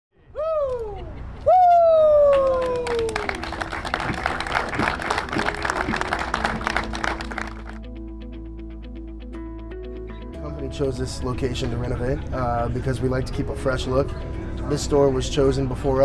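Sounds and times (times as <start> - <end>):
crowd clapping: 2.0 - 7.8
background music: 2.6 - 16.0.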